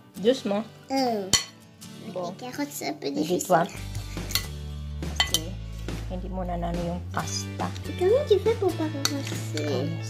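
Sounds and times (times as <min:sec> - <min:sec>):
background music with low notes: 0:00.0 - 0:10.0
plastic spoon clinking glass bowl: 0:04.3 - 0:04.6, 0:05.2 - 0:05.5.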